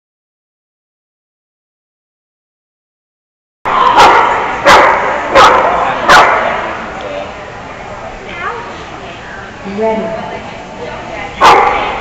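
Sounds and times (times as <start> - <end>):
dog barking echoing in hall: 3.8 - 6.8, 11.4 - 12.0.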